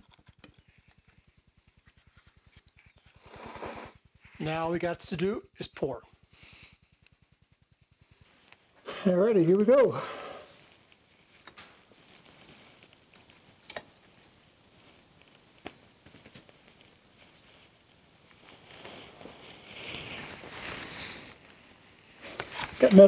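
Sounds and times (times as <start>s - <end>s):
sharp clicks: 0.0s - 3.6s
molten metal hissing and crackling: 0.0s - 23.0s.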